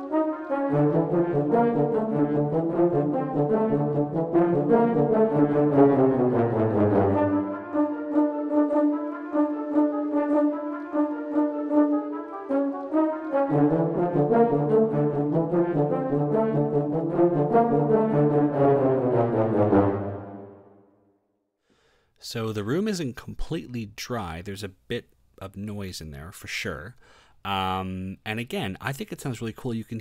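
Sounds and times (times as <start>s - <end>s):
low brass: 0.0s - 20.8s
high brass short notes: 0.0s - 20.9s.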